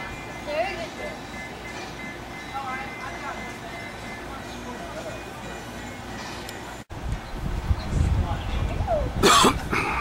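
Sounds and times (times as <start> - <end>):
person coughing: 9.2 - 10.0.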